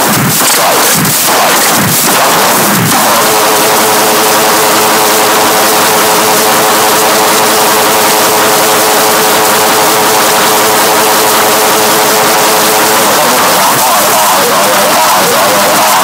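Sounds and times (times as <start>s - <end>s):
distorted droning tone: 0.0s - 16.0s.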